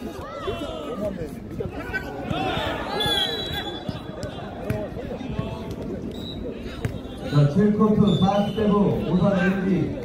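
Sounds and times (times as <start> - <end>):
crowd shouting and chattering: 0.0 - 10.0.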